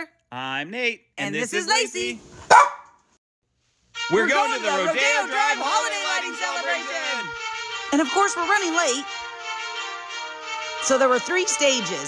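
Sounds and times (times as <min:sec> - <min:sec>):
dog barking: 0:02.4 - 0:03.0.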